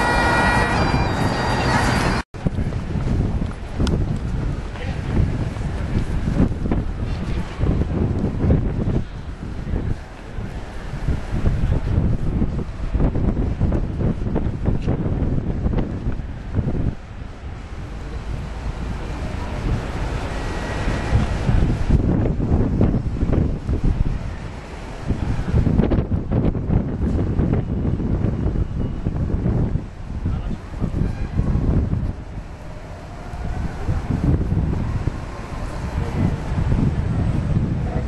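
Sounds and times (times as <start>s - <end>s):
wind buffeting microphone: 0.0s - 38.0s.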